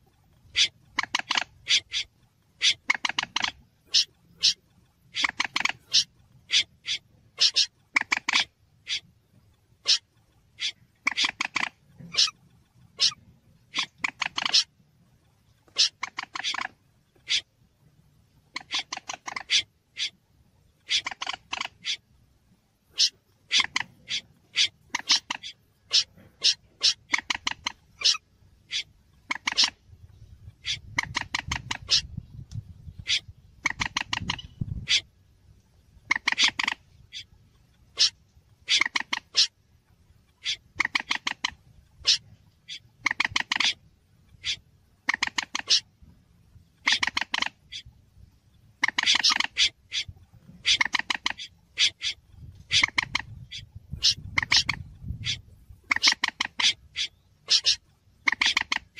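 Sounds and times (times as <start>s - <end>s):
harsh wetland bird calls: 0.0s - 17.6s, 18.4s - 22.2s, 22.9s - 35.2s, 36.0s - 39.6s, 40.2s - 46.0s, 46.7s - 58.9s.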